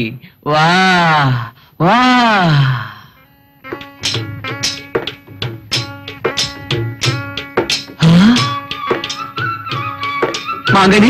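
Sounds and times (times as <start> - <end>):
man's drawn-out vocal call: 8.0 - 8.6.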